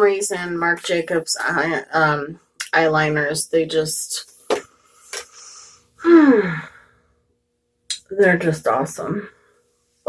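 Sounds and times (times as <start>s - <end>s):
woman breathing in: 4.7s - 7.1s.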